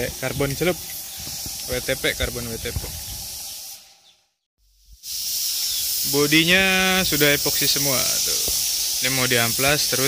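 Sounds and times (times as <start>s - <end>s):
high-pitched background hiss: 0.0s - 10.0s.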